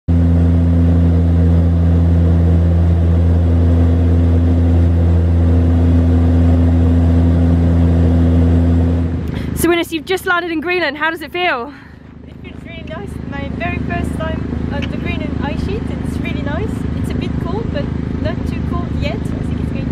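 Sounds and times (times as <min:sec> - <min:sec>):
aircraft engines droning: 0:00.1 - 0:19.9.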